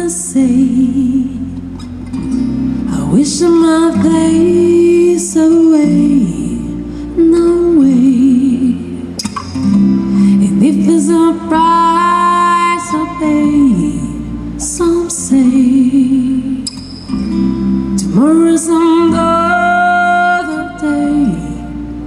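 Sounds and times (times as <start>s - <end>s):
bass guitar: 0.0s - 22.0s
plucked acoustic guitar: 0.0s - 22.0s
woman singing into a microphone: 0.0s - 22.0s.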